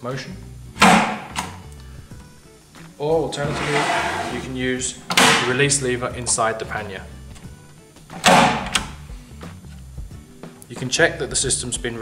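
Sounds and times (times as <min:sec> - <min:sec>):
latch clack: 0:05.1 - 0:05.6, 0:08.2 - 0:08.9.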